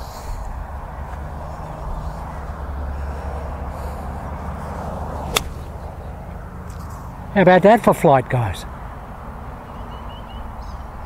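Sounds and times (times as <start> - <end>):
golf club striking ball: 5.2 - 6.2.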